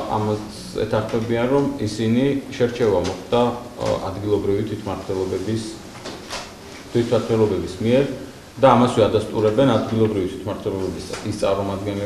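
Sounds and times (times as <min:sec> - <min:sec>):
man speaking into a microphone: 0:00.0 - 0:05.9, 0:06.9 - 0:12.0.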